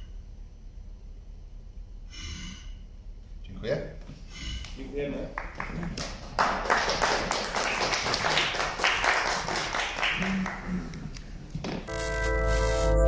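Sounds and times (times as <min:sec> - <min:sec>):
small audience applauding: 0:05.2 - 0:11.2.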